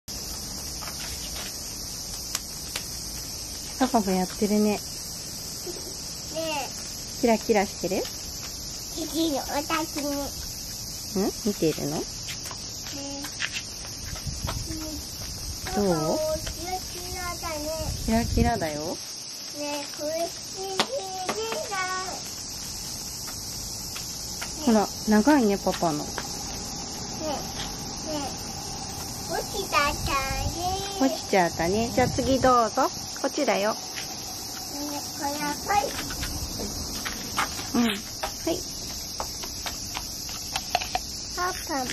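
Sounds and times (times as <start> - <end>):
cicadas shrilling: 0.1 - 41.9.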